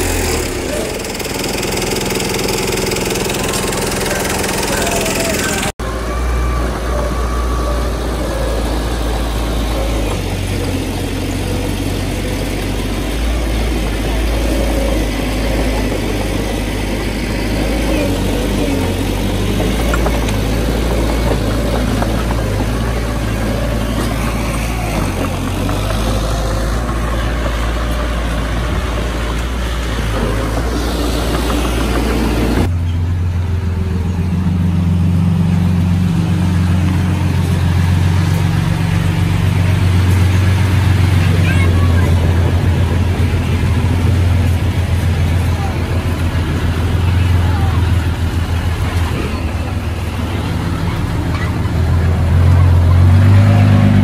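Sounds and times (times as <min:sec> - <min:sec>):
bulldozer and truck diesel engines: 0:00.0 - 0:54.0
dump truck diesel engine humming: 0:00.0 - 0:54.0.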